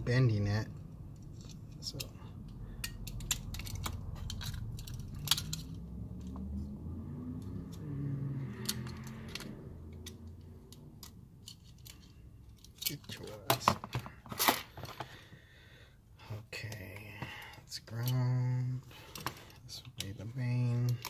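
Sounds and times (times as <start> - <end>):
wires rustling: 0.0 - 15.4.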